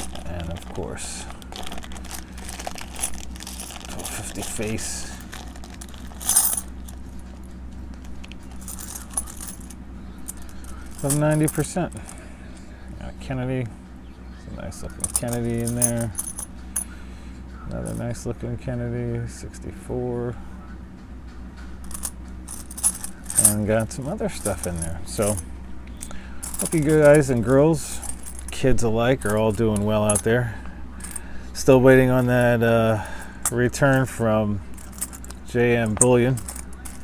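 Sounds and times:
coins clinking and clattering: 0.0 - 7.4, 8.0 - 12.2, 14.9 - 16.9, 21.8 - 25.4, 26.4 - 30.3, 31.0 - 31.3, 34.7 - 37.0.

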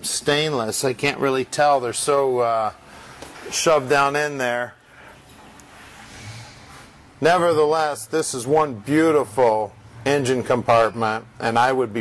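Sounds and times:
faint ambient hiss: 0.0 - 12.0.

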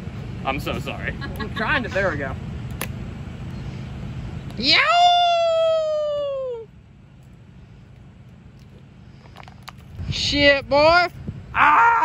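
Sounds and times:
man shouting: 11.6 - 12.0.

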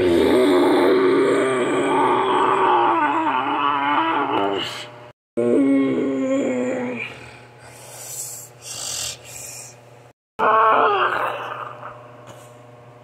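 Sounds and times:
breathy hissing voice: 5.8 - 9.9.

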